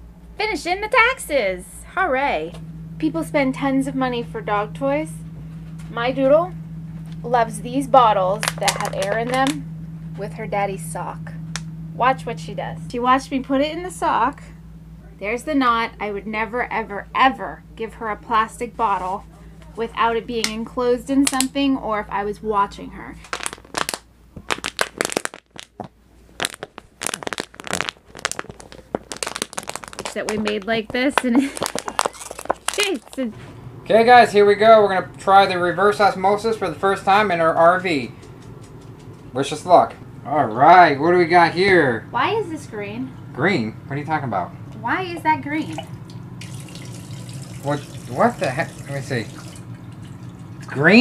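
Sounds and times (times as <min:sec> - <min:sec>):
dog chewing plastic bottle: 0:23.3 - 0:30.7, 0:31.3 - 0:33.2
water running into a glass: 0:45.7 - 0:50.8.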